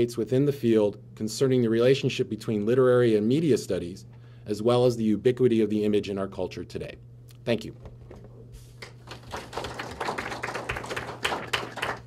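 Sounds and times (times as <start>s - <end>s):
audience applause: 8.9s - 12.0s.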